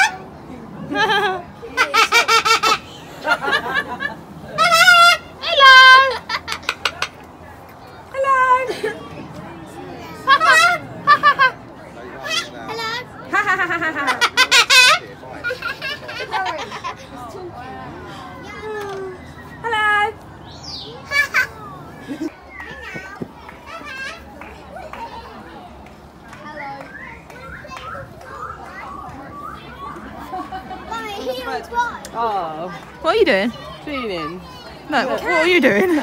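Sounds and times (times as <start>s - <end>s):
children chattering: 0.0s - 36.0s
cockatoo calling: 1.8s - 3.3s, 4.6s - 7.2s, 12.2s - 15.1s.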